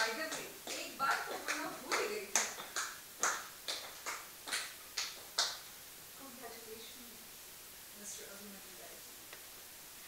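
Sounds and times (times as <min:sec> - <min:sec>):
sharp handclaps: 0:00.0 - 0:05.7.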